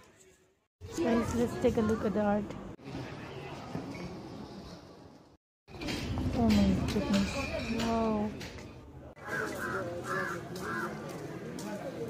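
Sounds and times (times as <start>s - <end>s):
street noise: 0.0s - 12.0s
crow cawing: 9.2s - 11.0s.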